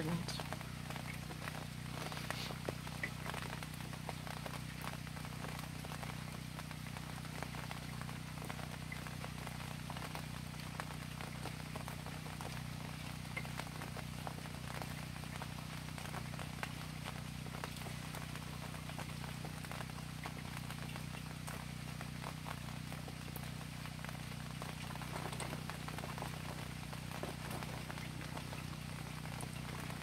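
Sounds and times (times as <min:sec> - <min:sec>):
drips and small taps: 0:00.0 - 0:30.0
light rain falling: 0:00.0 - 0:30.0.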